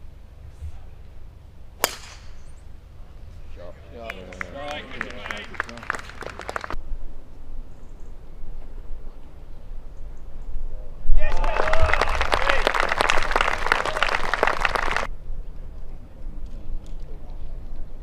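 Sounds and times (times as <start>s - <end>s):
golf club striking ball: 1.8s - 2.6s
spectators' voices: 3.3s - 6.8s, 11.2s - 15.1s
scattered clapping: 4.0s - 6.8s, 11.2s - 15.1s.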